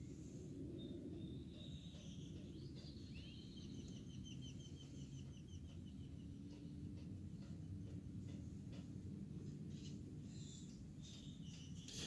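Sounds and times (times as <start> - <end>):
bird chirping and whistling: 0.8 - 5.4.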